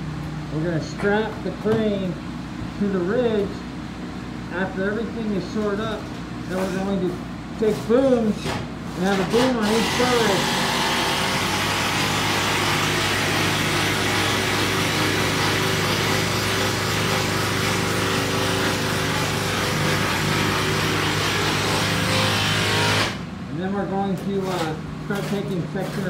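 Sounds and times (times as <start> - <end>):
small engine running with hiss: 9.0 - 23.3.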